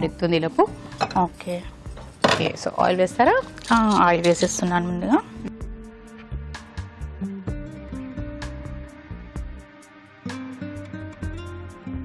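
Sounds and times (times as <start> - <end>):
woman talking: 0.0 - 1.7, 2.3 - 5.5.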